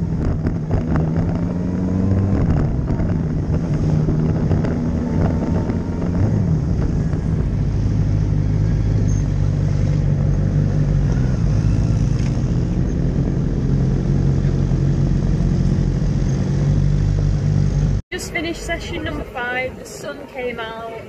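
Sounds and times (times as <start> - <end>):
motorcycle engine at low revs: 0.0 - 18.0.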